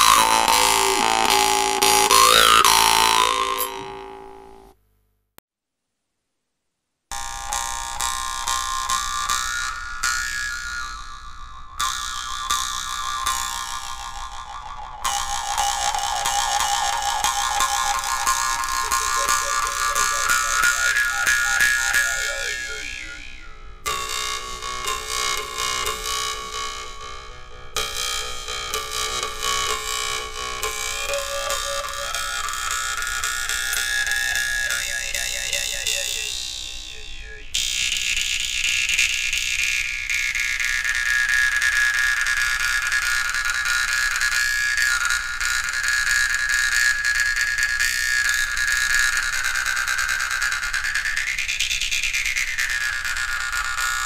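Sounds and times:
jaw harp buzzing drone: 0:00.0 - 0:04.8, 0:15.0 - 0:38.4.

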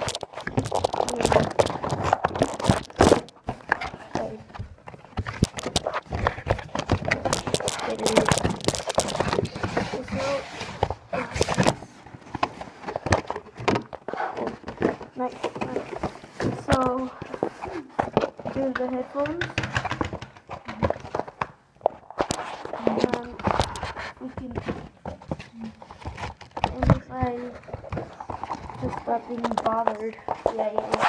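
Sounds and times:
person speaking: 0:00.0 - 0:04.7, 0:05.5 - 0:11.8, 0:15.1 - 0:19.8, 0:22.7 - 0:25.9, 0:26.7 - 0:31.0
packaging clicks knocks and rustles: 0:00.0 - 0:31.0.

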